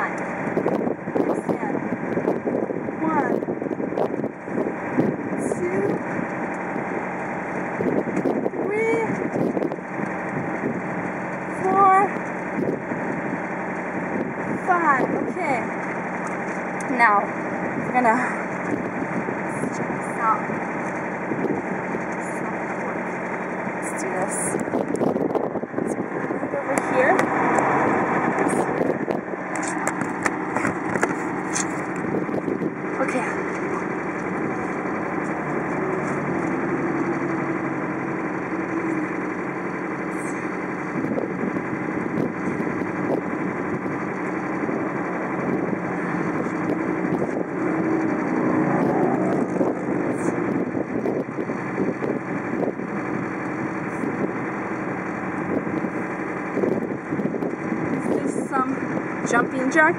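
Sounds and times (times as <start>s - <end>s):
vehicle engine running: 0.0s - 59.9s
wind blowing across microphone: 0.0s - 59.9s.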